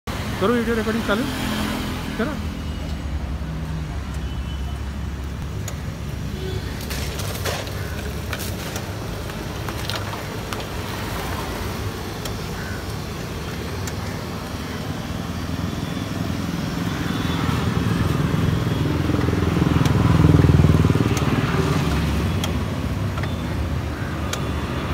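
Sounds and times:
sharp clicks: 0:05.2 - 0:06.0, 0:13.7 - 0:14.1, 0:19.2 - 0:23.5, 0:24.2 - 0:24.6.

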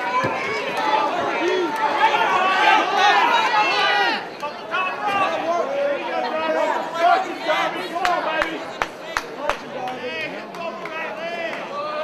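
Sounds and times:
crowd shouting and yelling: 0:00.0 - 0:12.0.

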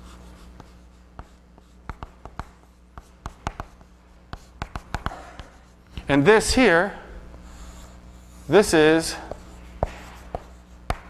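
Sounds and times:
chalk tapping and scraping: 0:00.0 - 0:06.6, 0:07.5 - 0:11.0
low steady hum: 0:00.0 - 0:11.0.

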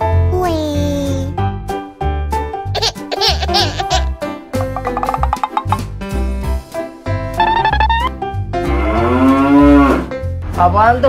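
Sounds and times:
background music with bass beat: 0:07.4 - 0:08.2
cow mooing: 0:08.6 - 0:10.1.

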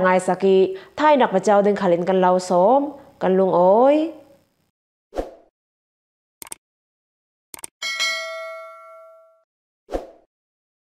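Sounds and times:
bright bell ding: 0:07.8 - 0:09.4.

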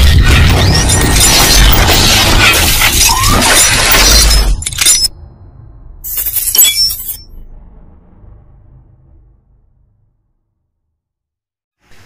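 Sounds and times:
glass shattering: 0:06.1 - 0:07.3.

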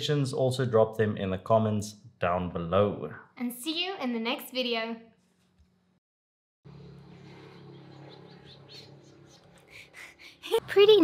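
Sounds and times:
steady low hum: 0:06.7 - 0:11.0
high bird chirps: 0:07.2 - 0:10.0.

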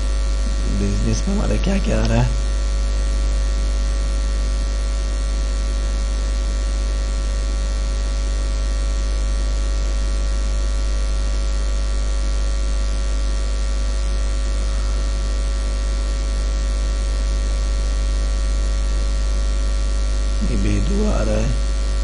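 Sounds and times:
microphone hiss: 0:00.0 - 0:03.0, 0:19.9 - 0:22.0
electrical mains hum and buzz: 0:00.0 - 0:22.0.

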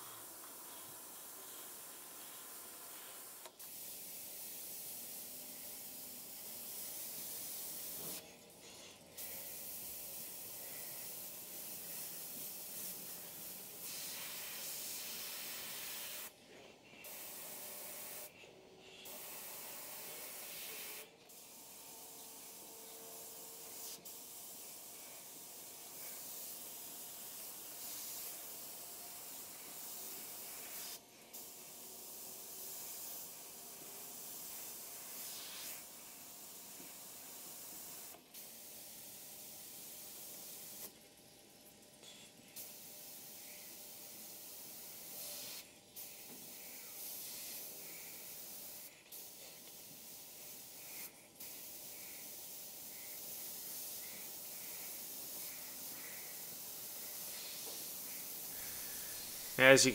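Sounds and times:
airbrush hissing: 0:00.0 - 0:33.6, 0:34.2 - 0:38.9, 0:42.5 - 0:59.9.

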